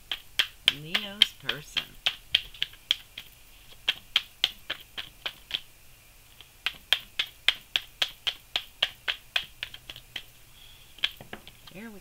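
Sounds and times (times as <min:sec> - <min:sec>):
cards being shuffled: 0:00.0 - 0:05.7, 0:06.3 - 0:10.3.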